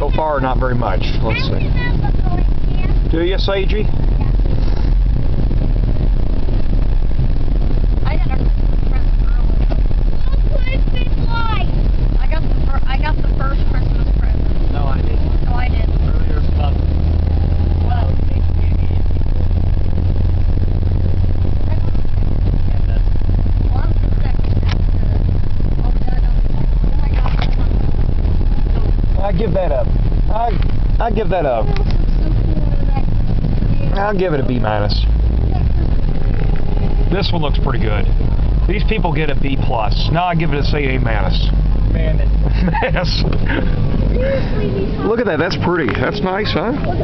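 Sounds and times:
car road and engine rumble: 0.0s - 47.0s
deep drone: 0.0s - 47.0s
faint voices talking: 0.0s - 47.0s.

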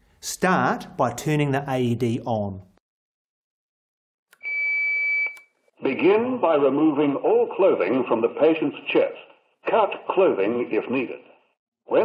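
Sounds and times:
high-pitched beep: 4.4s - 5.5s.

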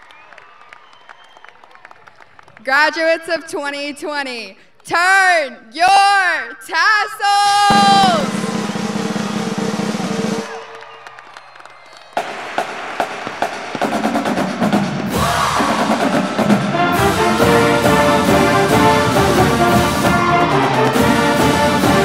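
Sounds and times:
crowd cheering: 0.0s - 2.6s, 7.6s - 22.0s
marching band pep song: 7.6s - 22.0s
snare and bass drum strokes: 7.7s - 10.7s, 12.2s - 22.0s.

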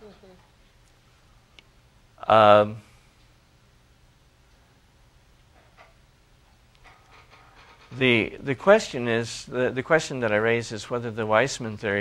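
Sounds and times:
man speaking: 2.2s - 2.9s, 7.9s - 12.0s.

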